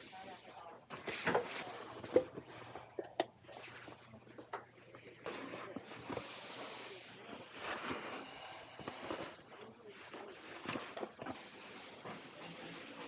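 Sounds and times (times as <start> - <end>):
office room noise: 0.0 - 13.0.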